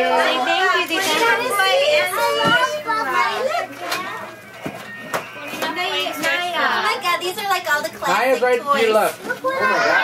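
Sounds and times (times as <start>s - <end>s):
children chattering: 0.0s - 8.3s, 8.9s - 10.0s.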